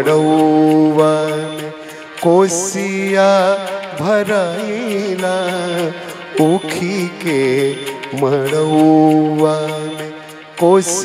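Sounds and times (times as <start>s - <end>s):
harmonium: 0.0s - 11.0s
man singing long note: 0.0s - 11.0s.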